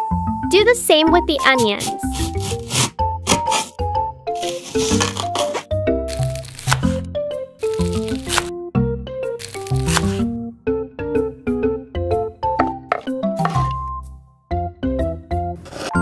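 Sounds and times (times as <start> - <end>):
bouncy background music: 0.0 - 16.0
knife chopping onion: 1.5 - 3.8, 4.4 - 8.5, 9.4 - 10.3, 13.0 - 13.8.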